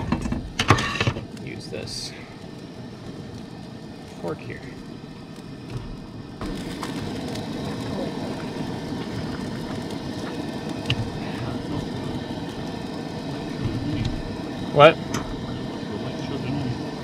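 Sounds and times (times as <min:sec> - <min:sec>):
pot boiling on a gas burner: 0:00.0 - 0:17.0.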